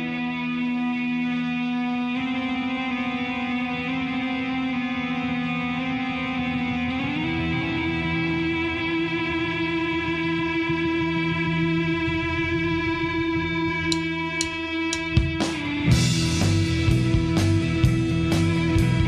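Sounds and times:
electric guitars droning chord: 0.0 - 19.0
sharp ticks: 13.9 - 15.2.

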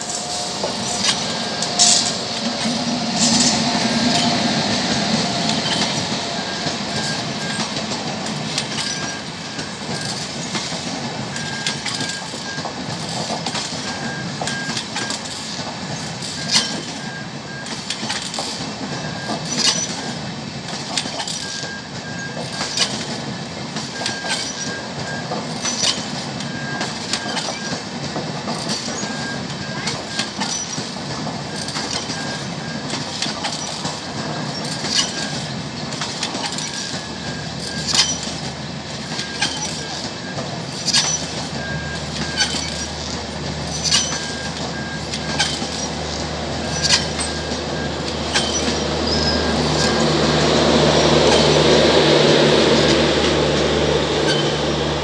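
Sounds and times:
train wheels rumbling on rails: 0.0 - 55.0
wheels clicking over track joints: 0.0 - 55.0.

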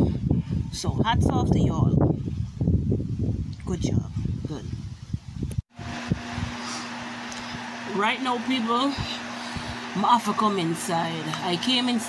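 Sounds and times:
electric fan humming: 5.4 - 12.0.

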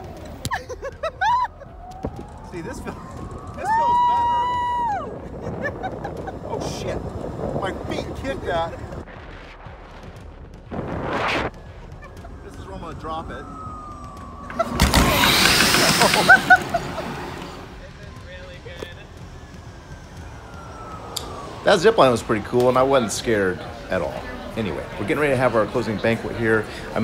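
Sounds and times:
loud rush of noise: 2.1 - 27.0
zipline trolley whine on cable: 11.5 - 26.9.

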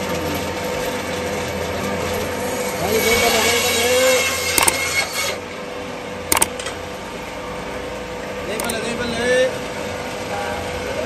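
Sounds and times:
bandsaw cutting meat: 2.8 - 5.4
bandsaw humming: 3.1 - 5.4
sharp clicks: 4.6 - 4.9, 6.3 - 6.6, 8.6 - 8.8.

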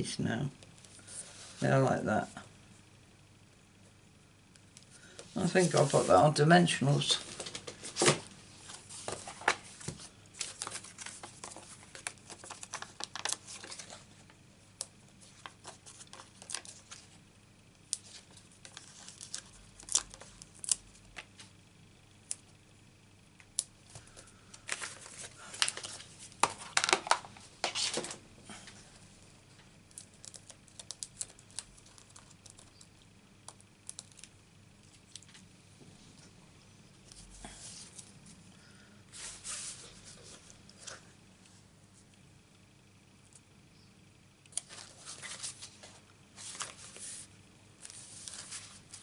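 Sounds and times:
paper rustling and crinkling: 5.3 - 6.3, 7.0 - 14.4, 15.2 - 17.2, 18.0 - 21.6, 24.0 - 28.2, 44.6 - 49.0.

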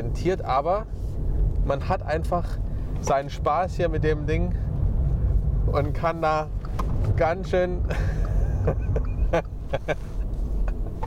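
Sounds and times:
tyre and road noise: 0.0 - 11.0
man laughing: 7.8 - 11.0.

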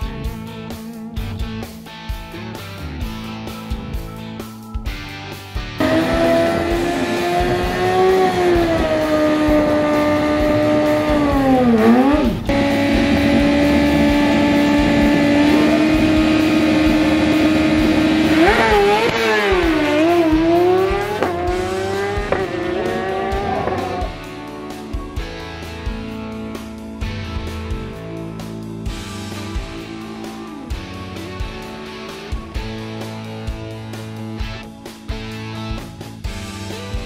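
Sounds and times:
background music: 0.0 - 37.0
racing engine revving: 5.8 - 24.5.

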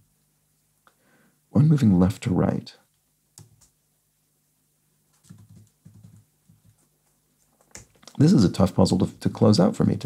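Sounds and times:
computer keyboard keystrokes: 5.2 - 6.8.

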